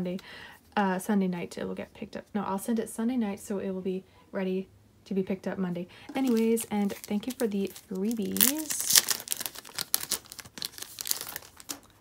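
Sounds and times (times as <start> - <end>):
plastic sleeve crinkling: 6.1 - 12.0.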